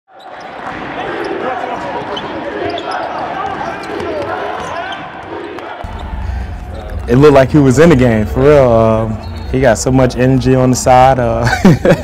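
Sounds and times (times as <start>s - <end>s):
crowd talking and calling out: 0.1s - 11.5s.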